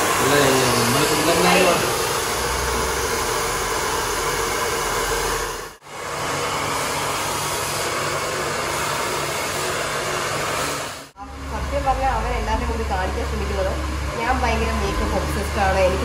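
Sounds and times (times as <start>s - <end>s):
hair dryer blowing: 0.0s - 16.0s.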